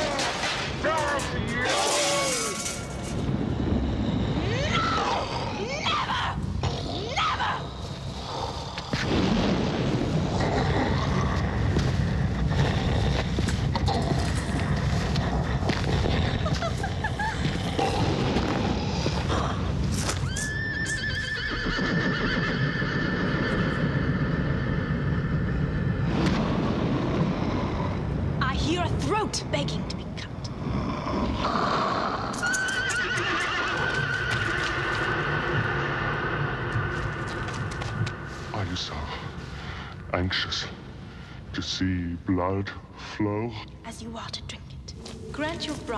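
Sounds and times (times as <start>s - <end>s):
horse whinnying: 20.0s - 25.9s, 31.5s - 37.9s.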